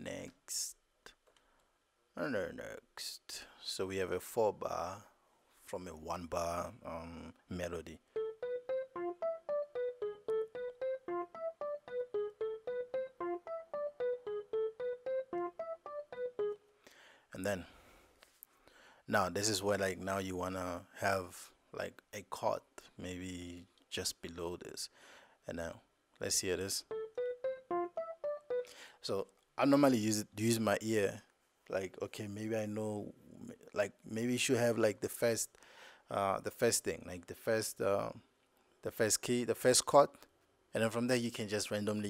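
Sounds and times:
piano-like keyboard melody: 0:08.0 - 0:16.6, 0:26.6 - 0:28.9.

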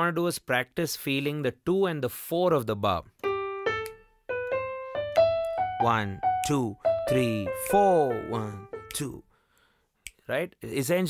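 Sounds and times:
digital piano notes: 0:03.2 - 0:09.2
finger snaps: 0:03.8 - 0:04.0, 0:10.0 - 0:10.2.

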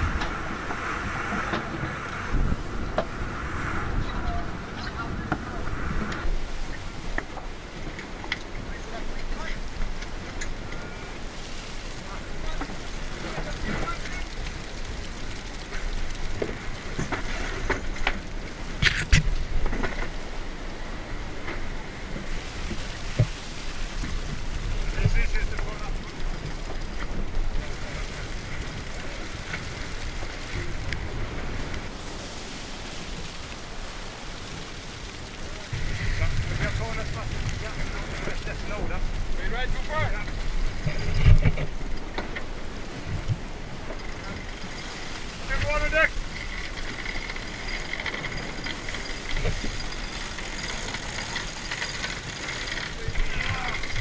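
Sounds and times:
wind rushing: 0:00.0 - 0:07.8, 0:27.2 - 0:41.5
water rushing past hull: 0:00.0 - 0:54.0.

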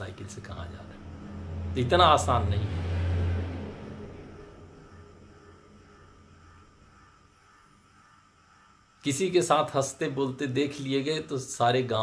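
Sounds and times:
low rumble: 0:00.4 - 0:06.9.

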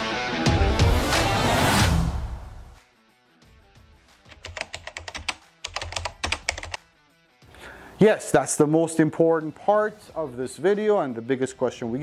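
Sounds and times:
keyboard typing clicks: 0:04.3 - 0:06.8.

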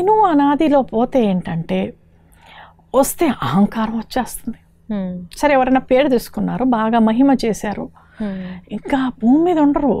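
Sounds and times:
woman speaking: 0:00.0 - 0:02.0, 0:02.9 - 0:10.0.

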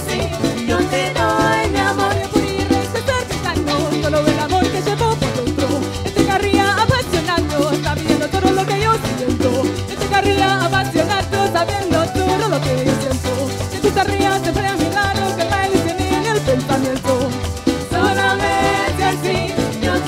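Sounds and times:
bass line: 0:00.0 - 0:20.0
guitar strumming: 0:00.0 - 0:20.0
maracas shaking: 0:00.0 - 0:20.0
people singing: 0:00.0 - 0:20.0.

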